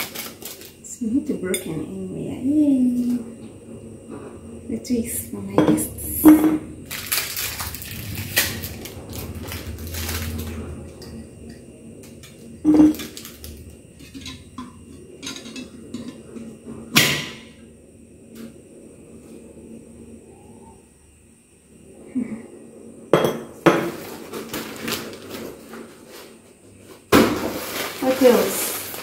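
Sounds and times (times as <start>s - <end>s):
plastic wrapping crinkling: 0.0s - 0.8s, 6.8s - 10.6s, 12.9s - 13.6s, 23.9s - 26.3s, 27.1s - 29.0s.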